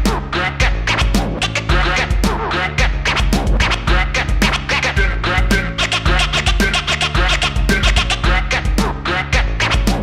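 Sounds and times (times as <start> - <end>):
deep bass: 0.0 - 10.0
drum beat: 0.0 - 10.0
record scratching: 0.1 - 10.0.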